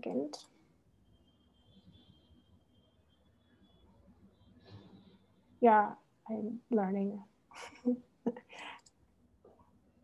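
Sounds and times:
woman speaking: 0.0 - 0.5, 5.6 - 8.7.

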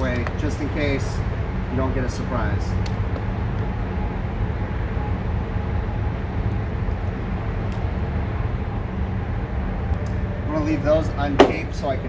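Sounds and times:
faint machinery hum: 0.0 - 12.0.

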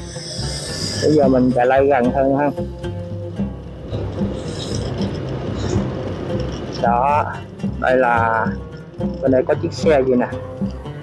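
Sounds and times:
background music with low beat: 0.0 - 11.0
motorbike road and wind noise: 0.0 - 11.0.

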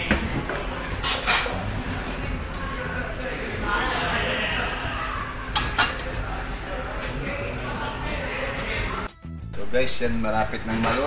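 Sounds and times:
background music: 0.0 - 11.0
background voices: 0.0 - 11.0.

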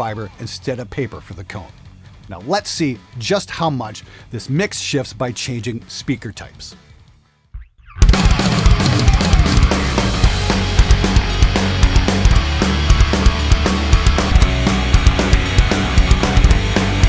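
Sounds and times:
bass guitar: 0.0 - 4.2, 6.8 - 17.0
distorted electric guitar: 7.6 - 17.0
drum kit: 7.9 - 17.0.

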